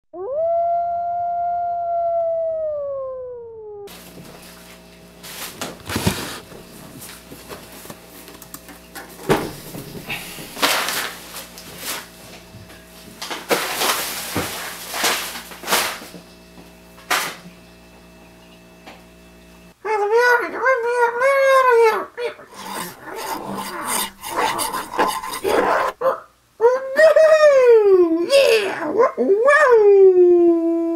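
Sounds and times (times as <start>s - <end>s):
dog howling: 0.2s - 3.9s, 19.9s - 26.9s.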